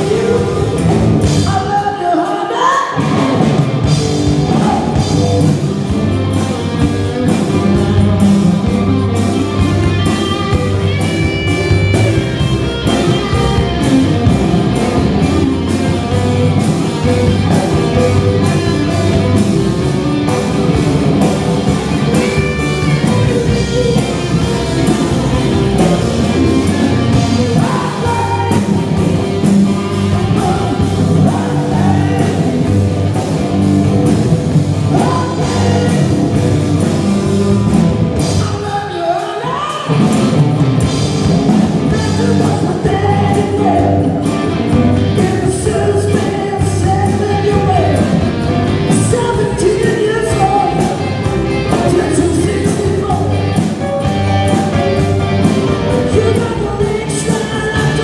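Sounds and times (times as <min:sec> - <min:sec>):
man singing lead vocal: 0:00.0 - 0:08.8, 0:17.0 - 0:19.6, 0:22.0 - 0:32.9, 0:34.8 - 0:36.5, 0:38.2 - 0:40.1, 0:41.5 - 0:54.8, 0:55.8 - 0:58.0
live rock band playing: 0:00.0 - 0:58.0.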